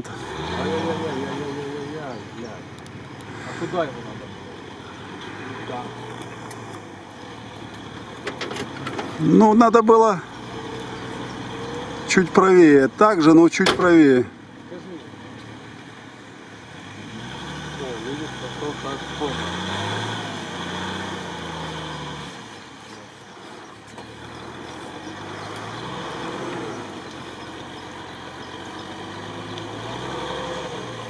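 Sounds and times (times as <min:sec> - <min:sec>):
engine revving: 0:00.0 - 0:31.0.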